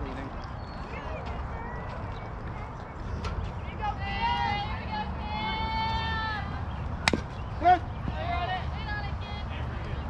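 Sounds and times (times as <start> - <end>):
sharp crack of bat: 7.0 - 7.3.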